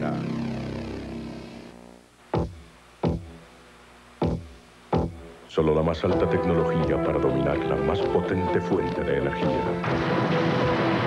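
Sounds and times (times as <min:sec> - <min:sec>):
sustained synthesizer chord: 0:00.0 - 0:03.4.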